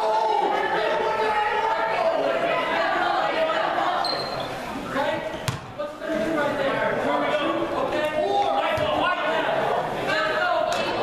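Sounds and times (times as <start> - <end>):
crowd chatter: 0.0 - 11.0
high squeak: 4.0 - 4.6
basketball bounce on hardwood floor: 5.5 - 5.7.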